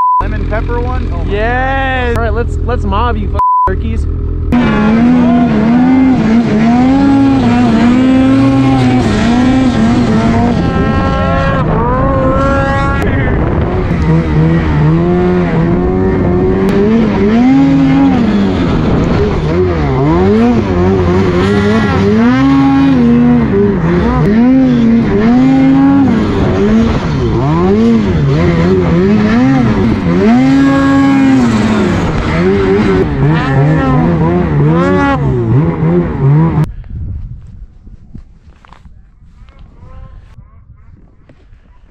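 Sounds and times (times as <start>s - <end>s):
snowmobile engine revving: 0.2s - 36.7s.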